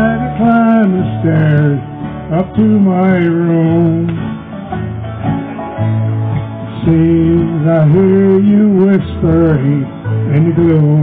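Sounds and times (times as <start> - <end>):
acoustic guitar: 0.0 - 11.0
country band playing: 0.0 - 11.0
electric guitar: 0.0 - 11.0.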